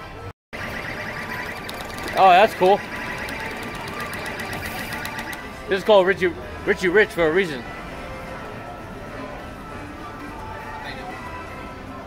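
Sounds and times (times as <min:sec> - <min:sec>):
rapid electronic ticking: 0:00.6 - 0:05.5
din of casino machines: 0:00.6 - 0:08.3.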